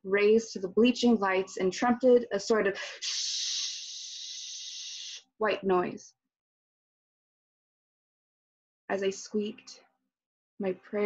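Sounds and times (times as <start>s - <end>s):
person hissing shh: 2.8s - 5.2s.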